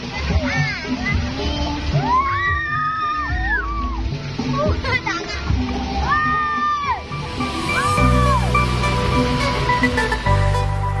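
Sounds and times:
background music with bass beat: 0:00.0 - 0:11.0
children yelling: 0:00.1 - 0:09.0.

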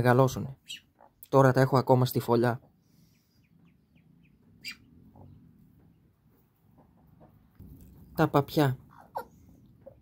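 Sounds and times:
duckling peeping: 0:00.4 - 0:01.2, 0:02.8 - 0:06.5, 0:08.8 - 0:10.0.

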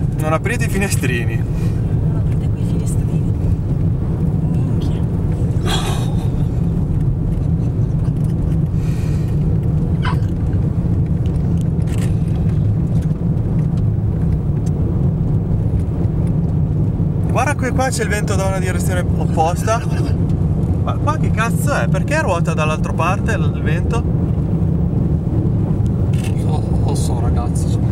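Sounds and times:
gusty wind buffeting car: 0:00.0 - 0:27.9
road noise: 0:00.0 - 0:27.9.

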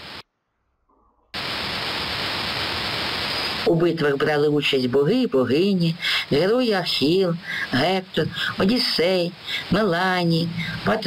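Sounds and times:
recording hiss: 0:00.0 - 0:00.2, 0:00.9 - 0:11.0.

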